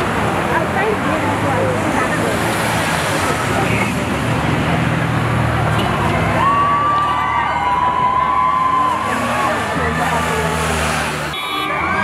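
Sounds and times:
cars driving past: 0:00.0 - 0:12.0
crowd chattering: 0:00.0 - 0:12.0
long car horn: 0:11.3 - 0:12.0.

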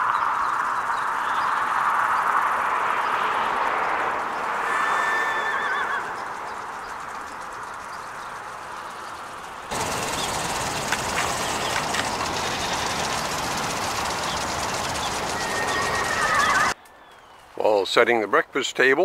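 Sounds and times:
outdoor background noise: 0:00.0 - 0:19.0
horse whinnying: 0:04.6 - 0:06.2, 0:15.3 - 0:16.8.

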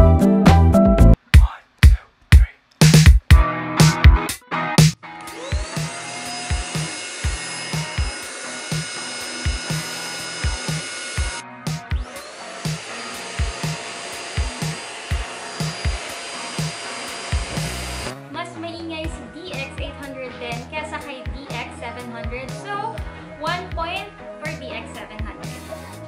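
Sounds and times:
background music with steady beat: 0:00.0 - 0:26.0
handheld vacuum cleaner running: 0:05.2 - 0:18.1.

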